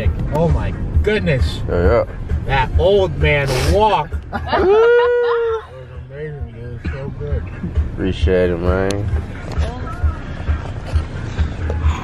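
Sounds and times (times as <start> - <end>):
indistinct voices in a car: 0.0 - 12.0
low car cabin rumble: 0.0 - 12.0.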